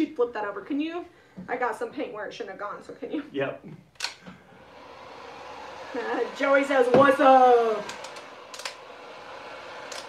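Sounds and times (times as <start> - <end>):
heat gun fan blowing: 4.0 - 10.0
heat gun switch click: 7.8 - 8.8.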